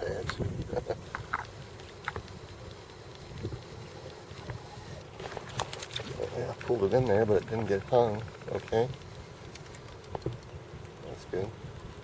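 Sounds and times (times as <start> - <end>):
waves slapping boat hull: 0.0 - 10.5
wind rumbling on microphone: 0.0 - 12.0
faint clicks: 0.2 - 11.5.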